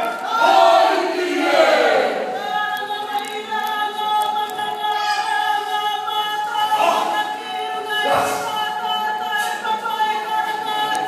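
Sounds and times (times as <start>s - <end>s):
group singing a cappella: 0.0s - 11.0s.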